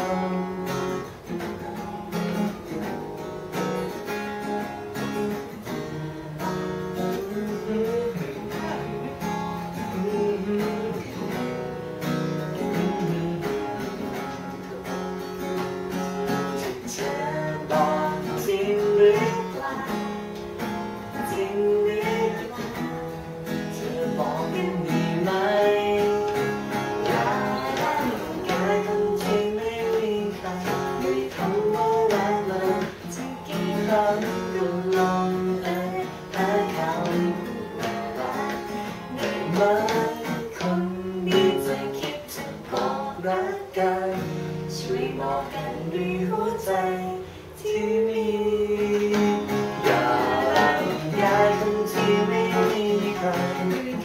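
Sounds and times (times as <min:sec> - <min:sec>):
woman and man singing: 0:00.0 - 0:01.4, 0:05.0 - 0:54.0
acoustic guitar strumming: 0:00.0 - 0:54.0.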